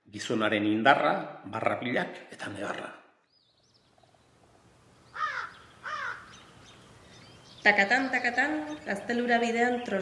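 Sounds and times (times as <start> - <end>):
crow cawing: 5.1 - 6.8.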